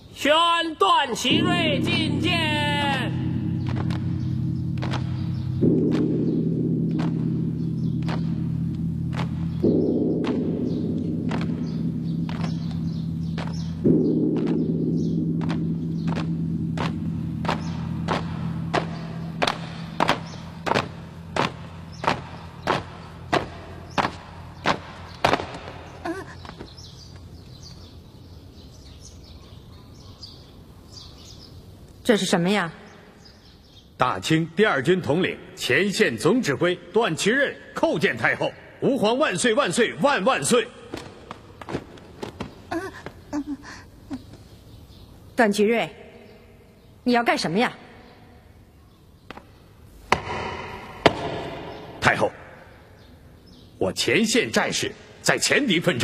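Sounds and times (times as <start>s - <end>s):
low sustained music chords: 1.2s - 29.3s, 47.8s - 56.0s.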